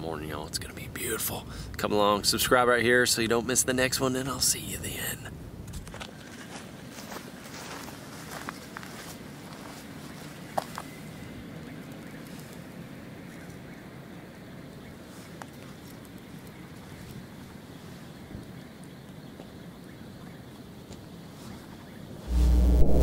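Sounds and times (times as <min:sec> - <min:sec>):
steady outdoor hiss: 0:00.0 - 0:23.0
electronic logo sting with bass: 0:22.3 - 0:23.0.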